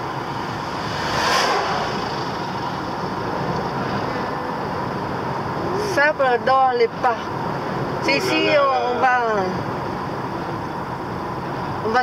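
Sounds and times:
lorry passing: 0.0s - 5.6s
road and engine noise in car: 0.0s - 12.0s.

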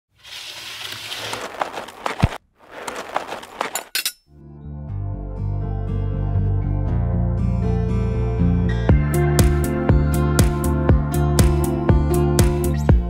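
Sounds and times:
plucked string music: 5.4s - 13.0s.

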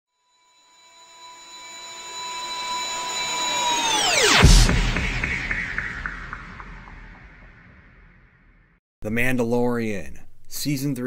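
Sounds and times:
high-pitched tones diving in pitch: 0.4s - 8.7s.

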